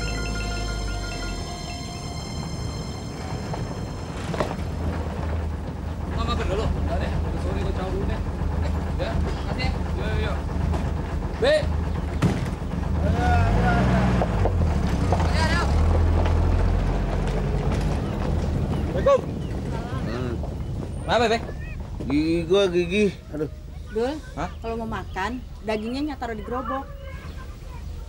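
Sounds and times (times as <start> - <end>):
voices: 0.0 - 14.3, 15.1 - 28.0
jeep engine idling: 0.0 - 28.0.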